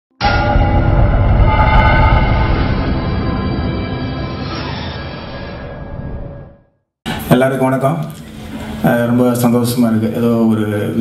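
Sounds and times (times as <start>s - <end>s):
deep rumble: 0.2s - 4.6s.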